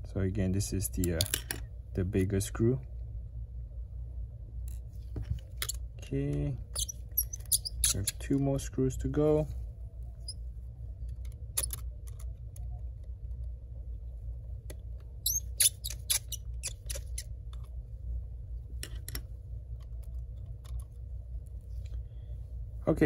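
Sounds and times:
steady low hum: 0.0 - 23.0
screwdriver squeaking: 6.7 - 8.3, 11.6 - 12.2, 15.2 - 17.3.

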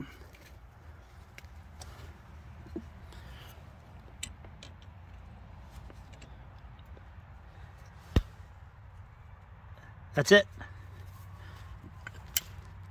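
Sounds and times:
metal cap screwing clicks: 4.0 - 5.2.

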